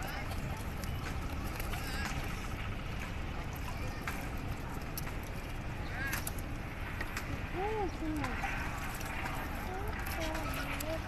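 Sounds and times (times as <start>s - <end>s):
steady low rumble: 0.0s - 11.0s
water lapping against boat: 0.0s - 11.0s.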